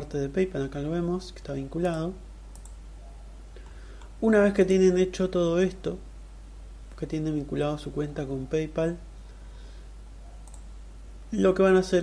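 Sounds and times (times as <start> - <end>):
low electrical hum: 0.0 - 12.0
computer mouse click: 1.8 - 2.8, 10.4 - 10.7.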